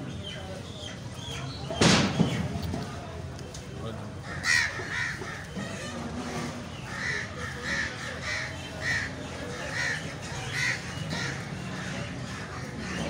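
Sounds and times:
bird harsh calls: 4.2 - 13.0.

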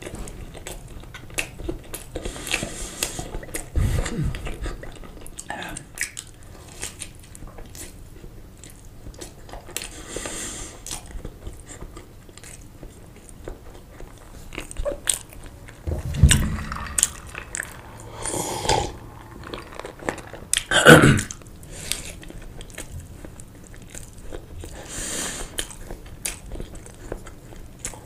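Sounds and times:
chewing sausage: 0.0 - 15.9, 17.0 - 28.0.

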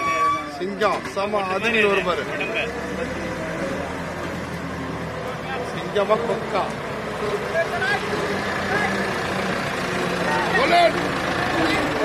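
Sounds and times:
tractor diesel engine running: 0.0 - 12.0
people calling: 5.4 - 12.0.

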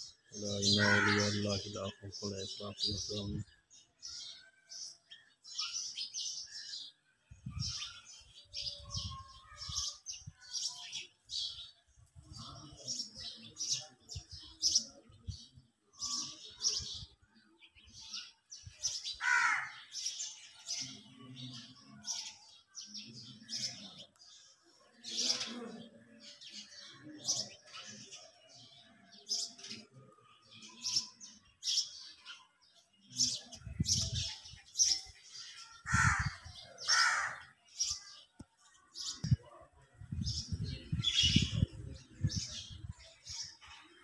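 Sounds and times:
faint voices: 0.0 - 3.5, 6.6 - 44.0
birds chirping: 0.0 - 44.0.

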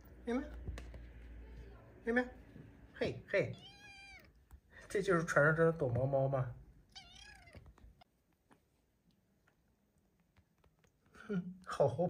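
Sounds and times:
kitten meowing: 3.5 - 4.4, 6.9 - 8.1.

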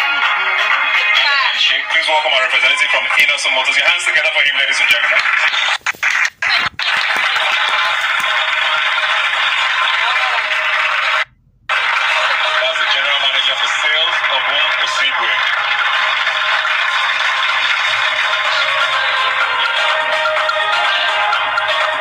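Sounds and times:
studio audience applauding and cheering: 2.6 - 22.0.

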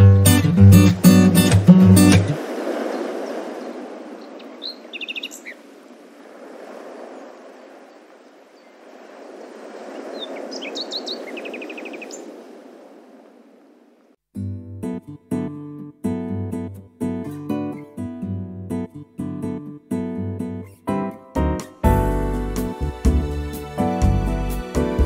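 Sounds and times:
guitar song: 0.0 - 2.4, 14.4 - 25.0
birds chirping: 2.7 - 6.0, 7.0 - 12.5.

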